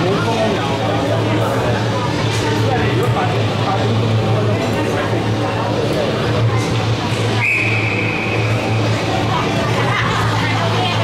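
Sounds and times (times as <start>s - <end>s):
referee's whistle blast: 7.4s - 8.5s.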